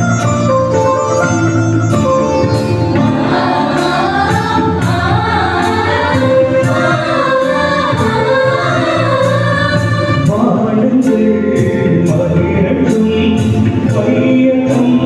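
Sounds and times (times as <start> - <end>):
electronic keyboard: 0.0 - 15.0
choir singing a hymn: 2.9 - 10.6.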